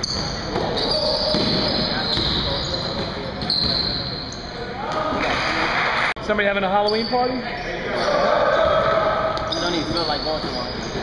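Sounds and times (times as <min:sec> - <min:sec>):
sneaker squeaks: 0:00.0 - 0:05.3, 0:06.8 - 0:11.0
indistinct voices echoing: 0:07.4 - 0:11.0.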